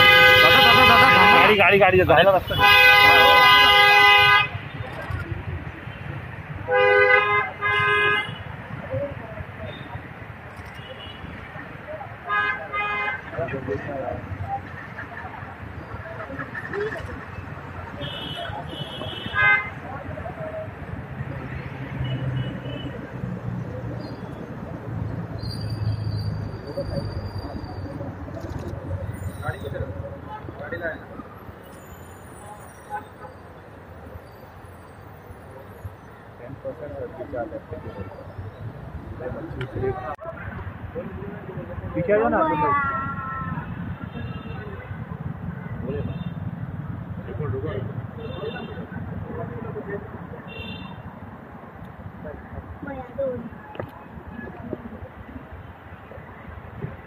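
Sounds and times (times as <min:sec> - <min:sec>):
vehicle horn honking: 0:00.0 - 0:01.7, 0:02.4 - 0:04.7, 0:06.7 - 0:08.4
street traffic noise: 0:00.0 - 0:57.0.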